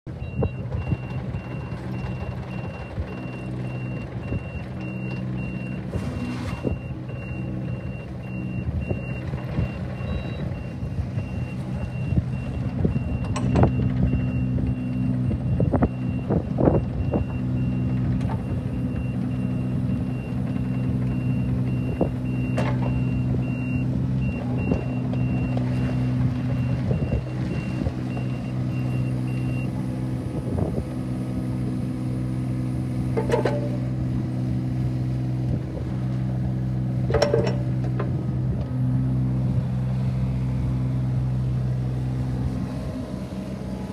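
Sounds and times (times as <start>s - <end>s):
diesel engine running: 0.1s - 43.9s
metal clanks: 33.2s - 34.0s, 37.1s - 38.2s.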